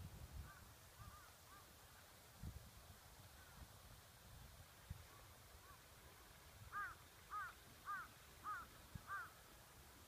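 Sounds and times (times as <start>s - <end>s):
distant crow cawing: 6.7s - 9.4s.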